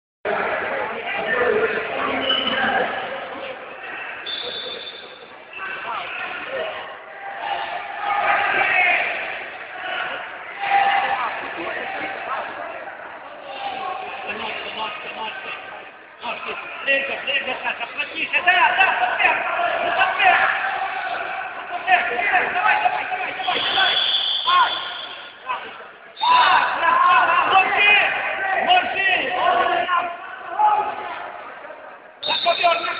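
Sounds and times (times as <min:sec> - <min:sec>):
background chatter: 0:00.3 - 0:32.9
voices calling out and shouting: 0:00.3 - 0:32.9
referee's whistle: 0:04.2 - 0:05.3, 0:23.4 - 0:25.4, 0:32.2 - 0:32.9
man shouting: 0:26.2 - 0:31.2.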